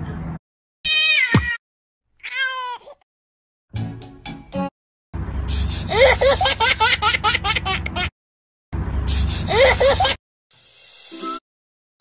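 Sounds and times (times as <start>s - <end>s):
animal high-pitched cries: 0.9s - 1.6s.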